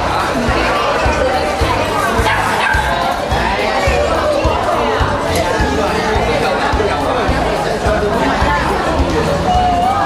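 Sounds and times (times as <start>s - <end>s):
background music: 0.0s - 10.0s
crowd chatter: 0.0s - 10.0s
dog barking: 2.2s - 3.0s.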